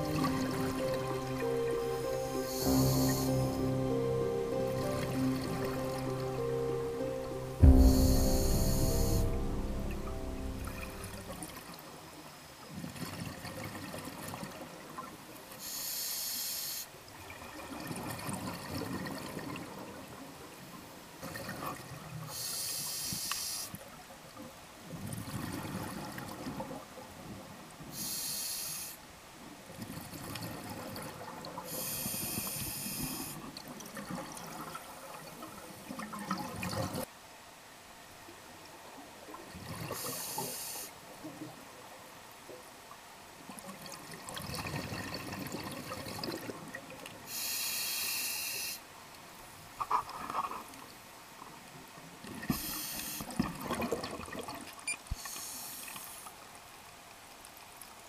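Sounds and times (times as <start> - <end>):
regulator inhalation hiss: 2.3 - 3.6, 7.6 - 9.4, 15.6 - 16.9, 22.4 - 23.8, 28.0 - 29.0, 31.7 - 33.4, 40.0 - 41.0, 47.3 - 48.8, 52.5 - 53.3, 55.2 - 56.3.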